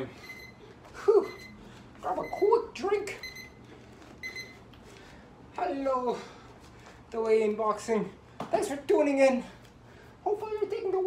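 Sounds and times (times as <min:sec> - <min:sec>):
high electronic beeps: 0:01.2 - 0:02.6.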